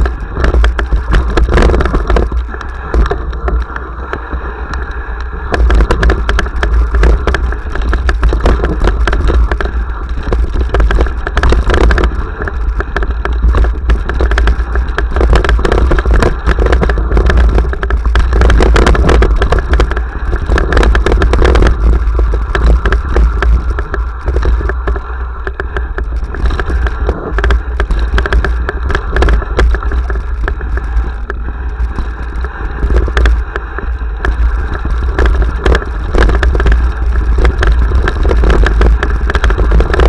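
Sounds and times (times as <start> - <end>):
bike rattling over stones: 0.0 - 40.0
wind and tyre rumble: 0.0 - 40.0.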